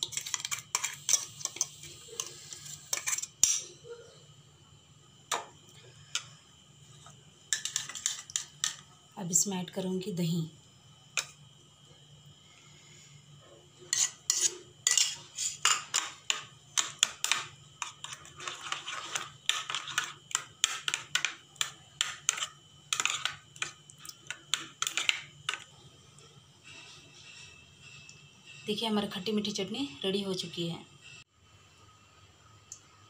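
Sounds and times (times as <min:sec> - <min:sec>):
spoon scraping ceramic bowl: 0:00.0 - 0:03.8, 0:07.5 - 0:08.8, 0:13.9 - 0:25.6.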